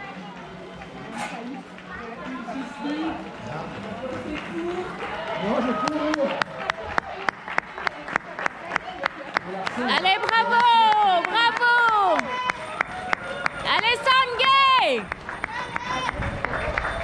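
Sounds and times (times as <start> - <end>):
hands clapping: 3.8 - 17.0.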